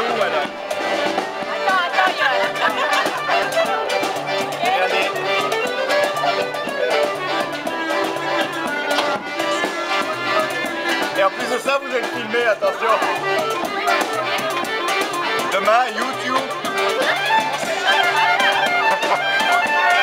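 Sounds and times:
people talking: 0.0s - 0.5s, 1.5s - 8.1s, 9.4s - 20.0s
clarinet: 0.0s - 20.0s
violin: 0.0s - 20.0s.

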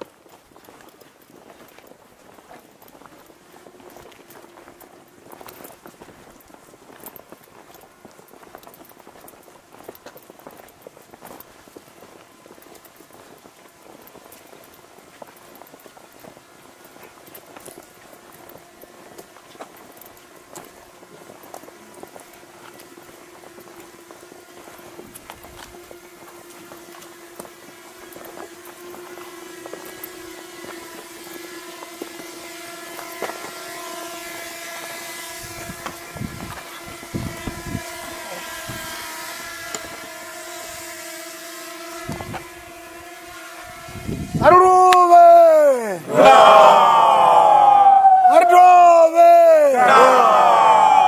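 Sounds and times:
group footsteps on stony path: 0.0s - 44.4s
group of voices calling: 44.4s - 51.0s.

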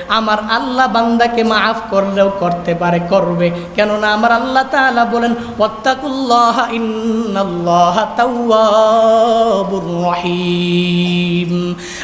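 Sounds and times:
man chanting melodically: 0.1s - 11.8s.

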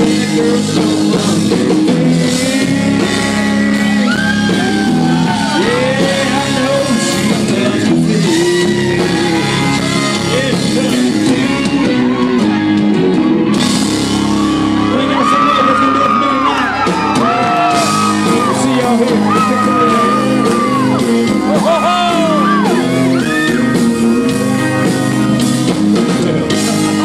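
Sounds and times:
man singing into microphone: 0.0s - 12.6s, 15.1s - 24.9s
live country band playing: 0.0s - 27.0s
crowd shouting: 3.8s - 10.4s, 11.5s - 25.7s.

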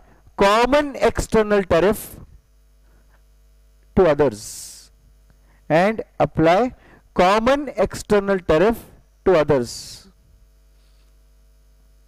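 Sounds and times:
man speaking: 0.0s - 2.3s, 3.9s - 5.0s, 5.7s - 10.2s
mains hum: 0.0s - 12.0s.

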